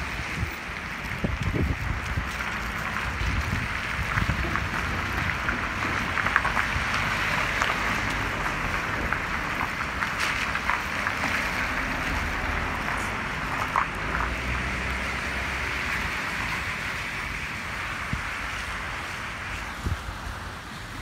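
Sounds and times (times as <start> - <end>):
heavy rain with ice pellets: 0.0 - 21.0
wind rumbling on microphone: 0.0 - 21.0.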